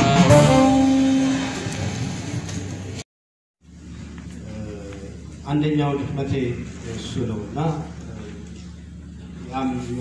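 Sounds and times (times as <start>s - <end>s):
live band playing: 0.0s - 3.0s.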